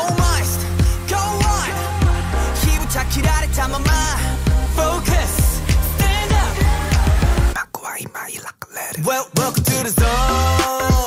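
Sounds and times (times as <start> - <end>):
pop song with heavy bass beat: 0.0 - 11.0
whispered vocal: 7.6 - 9.2.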